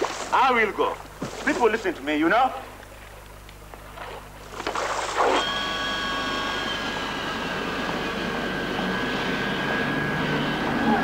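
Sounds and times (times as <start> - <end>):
jet engines whining: 5.2 - 11.0.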